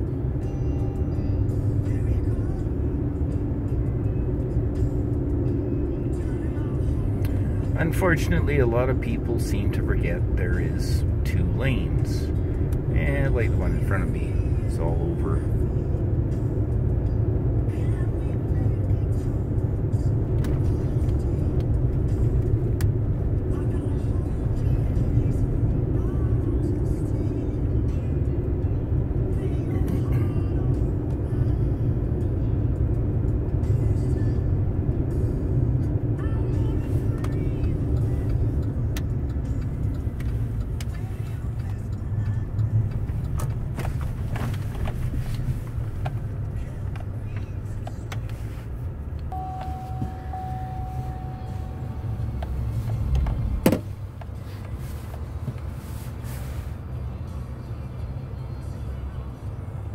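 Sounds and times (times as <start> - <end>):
vehicle engine and tyre rumble: 0.0 - 59.9.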